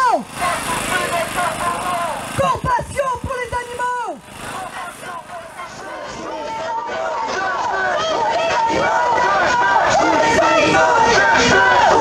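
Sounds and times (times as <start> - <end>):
crowd shouting together: 0.0 - 2.7, 3.6 - 12.0.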